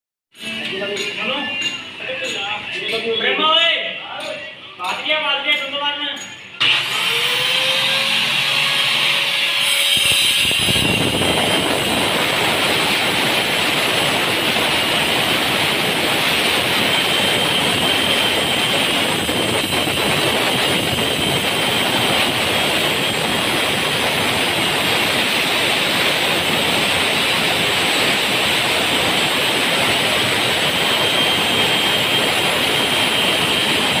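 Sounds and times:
loud steady machine noise: 6.2 - 34.0.

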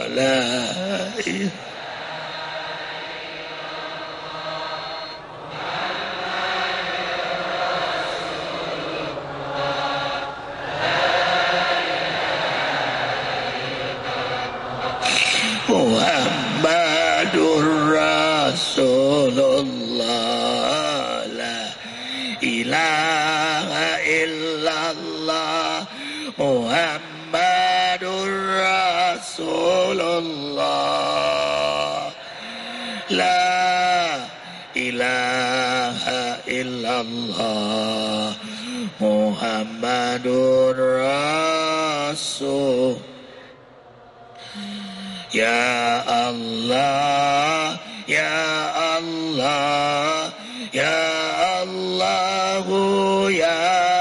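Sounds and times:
men chanting in unison: 0.0 - 43.6, 44.4 - 54.0.

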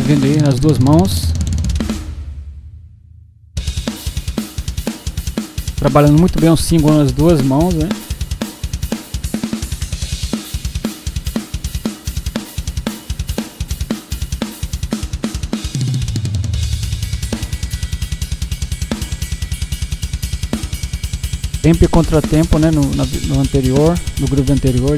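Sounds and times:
cymbals and hi-hat: 0.0 - 2.4, 3.6 - 24.9
bass drum strokes: 0.0 - 8.4, 15.7 - 24.9.

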